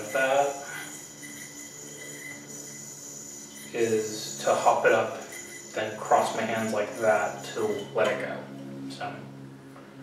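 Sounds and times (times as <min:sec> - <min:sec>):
yo-yo whirring: 0:00.0 - 0:08.6.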